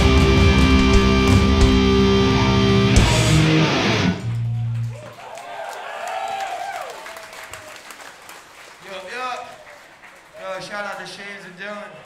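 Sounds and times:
hardcore band playing live: 0.0 - 4.9.

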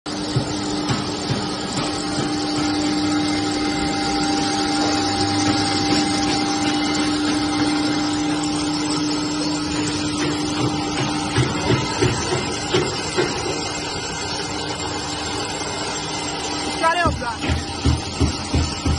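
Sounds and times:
pellet machine running: 0.1 - 18.9.

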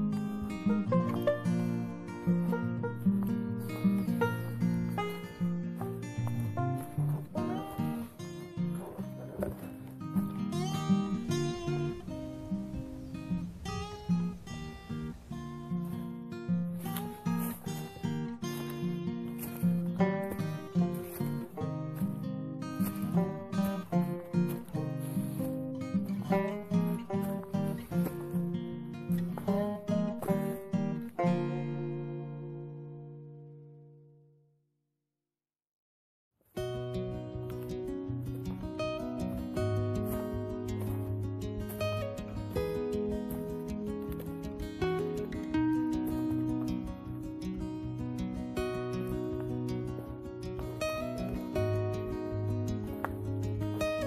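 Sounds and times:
plucked acoustic guitar: 0.0 - 34.3, 36.6 - 54.0.

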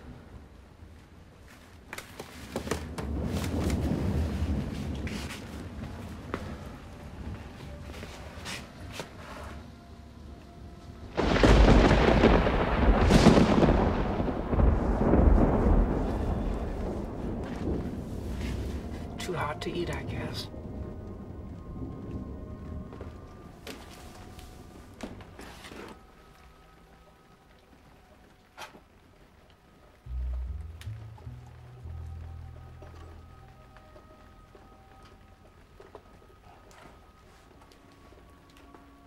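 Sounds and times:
low thunder rumble: 2.8 - 7.5, 11.0 - 23.5
loud thunderclap: 11.2 - 18.2.

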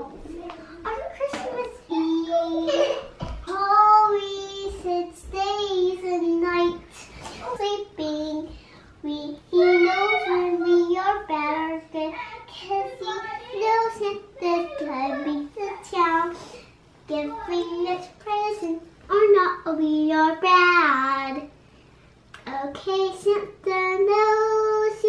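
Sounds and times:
girl singing unaccompanied: 0.0 - 21.6, 22.4 - 25.0.

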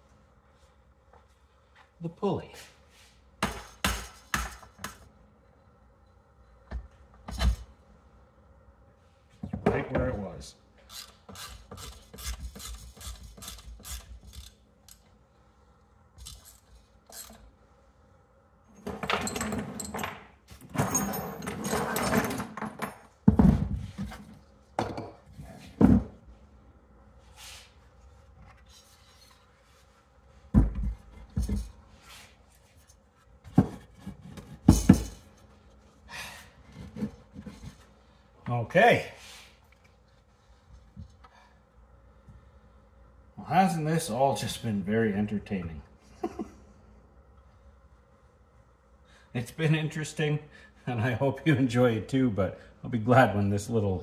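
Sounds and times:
objects knocking on workbench: 22.6 - 24.1, 24.8 - 25.2.

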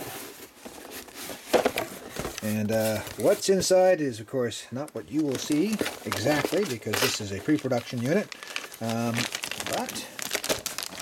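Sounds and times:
packing peanuts and plastic rustling: 0.0 - 3.6, 4.9 - 11.0.

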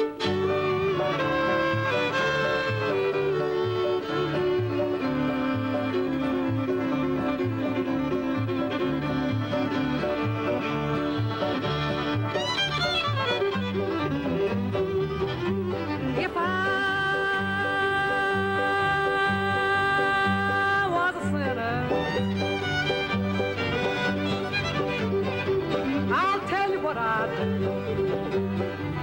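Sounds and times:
bluegrass band playing: 0.0 - 29.0
bowed fiddle melody: 0.0 - 29.0.

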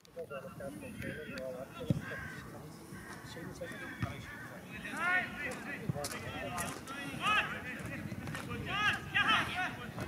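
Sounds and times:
distant players shouting: 8.5 - 10.0.

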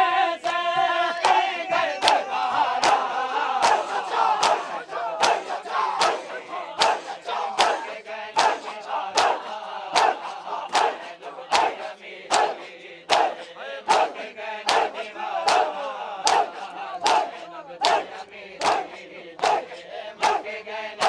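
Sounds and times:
men chanting: 0.0 - 21.0
palms slapping chests in unison: 0.4 - 21.0.

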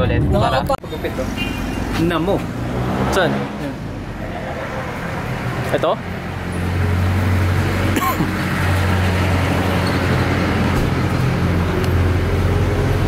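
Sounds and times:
street traffic: 0.0 - 13.0.

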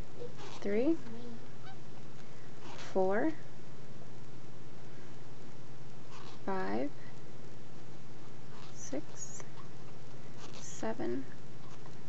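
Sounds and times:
steady low hum: 0.0 - 12.0
person speaking words: 0.2 - 1.4.

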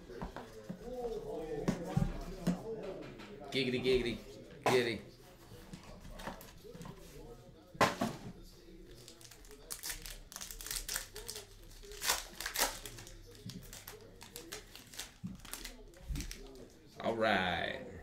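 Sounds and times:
foil wrapper tearing and crinkling: 8.9 - 16.6.

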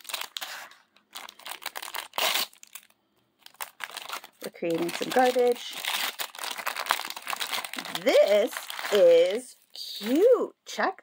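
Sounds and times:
plastic packet tearing and crinkling: 0.0 - 10.3.

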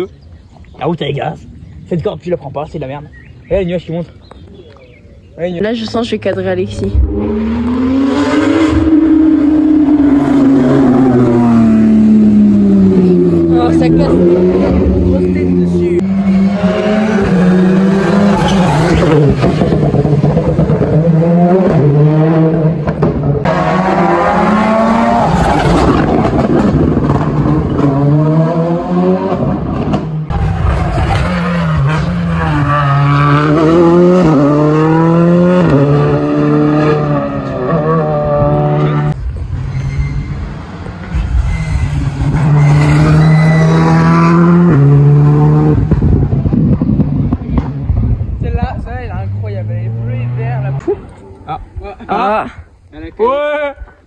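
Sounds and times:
rally car engines at full throttle: 5.6 - 52.8.

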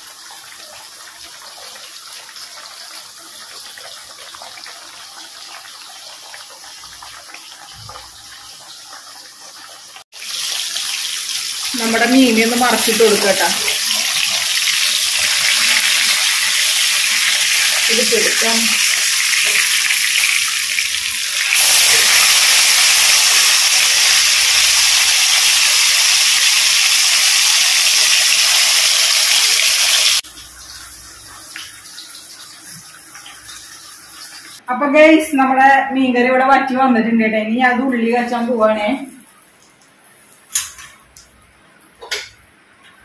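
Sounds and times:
fish sizzling in hot oil: 0.0 - 34.6.

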